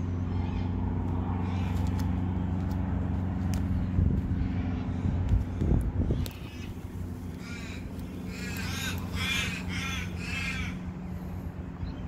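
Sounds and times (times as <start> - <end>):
low steady hum: 0.0 - 12.0
crow cawing: 7.4 - 10.9.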